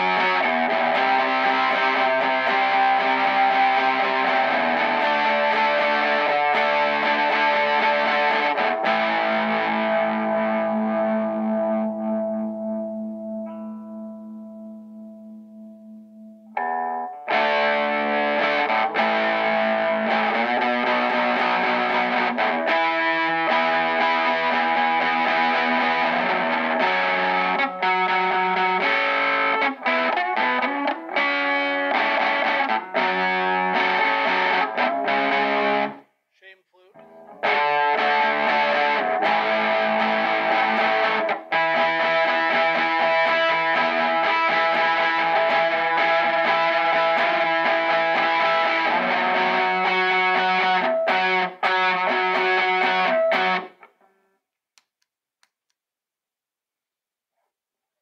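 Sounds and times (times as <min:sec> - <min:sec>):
distorted electric guitar: 0:00.0 - 0:36.1, 0:36.8 - 0:54.2.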